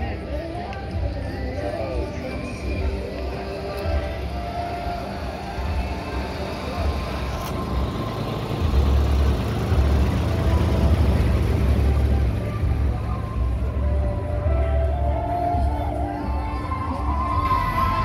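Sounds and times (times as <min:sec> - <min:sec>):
road train engine rumble: 0:00.0 - 0:18.0.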